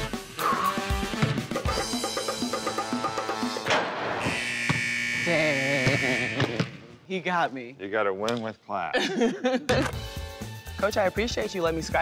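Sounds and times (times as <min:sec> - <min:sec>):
upbeat background music: 0:00.0 - 0:03.8, 0:09.6 - 0:12.0.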